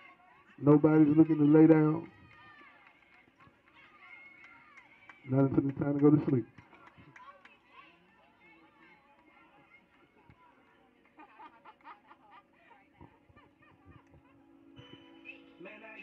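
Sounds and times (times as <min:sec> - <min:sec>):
faint distant voices: 0:00.0 - 0:16.0
music: 0:12.9 - 0:16.0.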